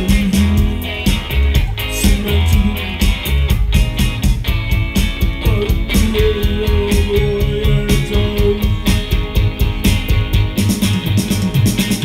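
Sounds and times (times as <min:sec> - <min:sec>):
live indie rock song: 0:00.0 - 0:12.0.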